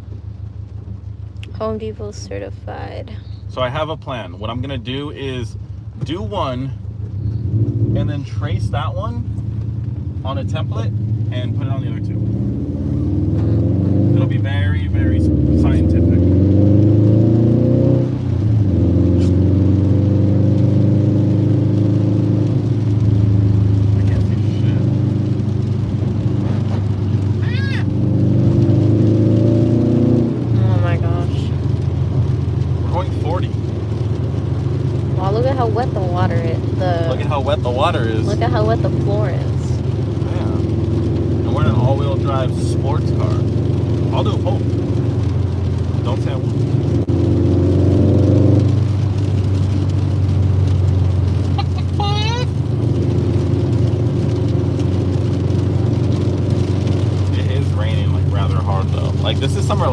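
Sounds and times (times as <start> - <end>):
car engine accelerating: 0.0 - 59.9
road noise inside car: 0.0 - 59.9
voices: 1.5 - 5.5, 35.1 - 40.7, 51.6 - 52.6.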